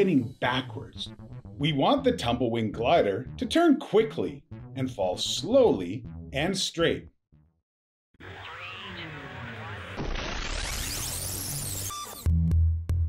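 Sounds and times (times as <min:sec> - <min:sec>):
electronic music with bass beat: 0:00.0 - 0:06.5.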